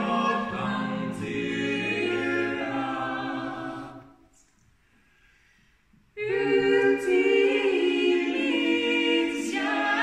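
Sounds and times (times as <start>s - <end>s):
a cappella harmony singing: 0.0s - 4.4s, 6.2s - 10.0s.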